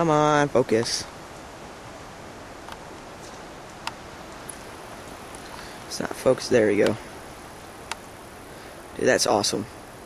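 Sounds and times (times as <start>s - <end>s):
steady background hiss: 0.0s - 10.0s
faint sharp clicks: 2.6s - 5.7s, 6.7s - 7.0s, 7.6s - 8.1s.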